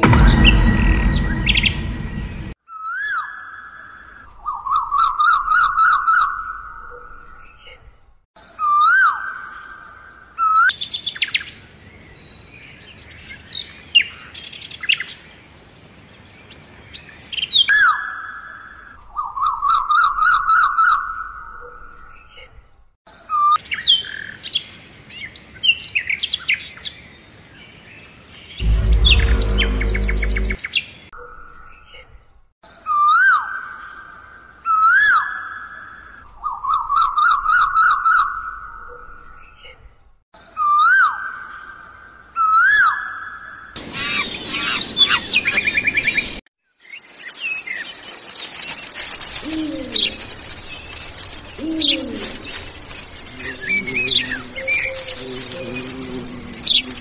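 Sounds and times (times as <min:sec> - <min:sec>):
deep pulsing bird call: 0:28.6 - 0:30.6.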